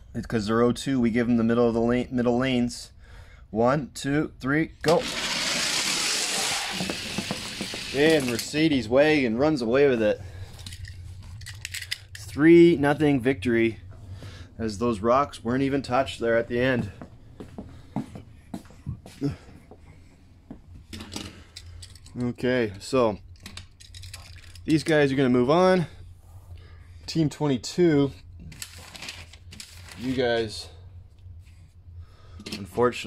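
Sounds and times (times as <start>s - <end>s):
toy cars rolling on plastic track: 4.9s - 8.5s.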